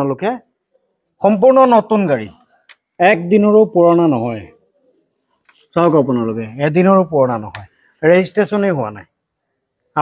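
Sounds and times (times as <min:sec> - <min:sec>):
man speaking: 0:00.0 - 0:00.5, 0:01.2 - 0:04.7, 0:05.6 - 0:09.2.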